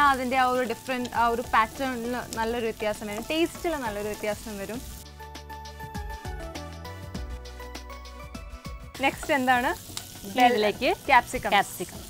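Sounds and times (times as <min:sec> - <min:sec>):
food sizzling in a frying pan: 0:00.0 - 0:05.2, 0:08.3 - 0:12.0
background music: 0:00.0 - 0:12.0
woman speaking: 0:10.3 - 0:12.0.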